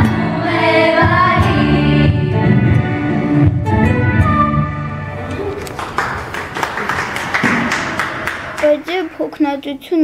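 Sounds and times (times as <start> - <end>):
audience clapping: 5.3 - 9.4.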